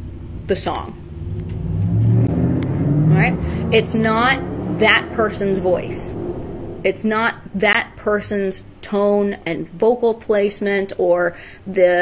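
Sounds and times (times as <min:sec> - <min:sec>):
low rumble with hum: 0:00.0 - 0:09.4.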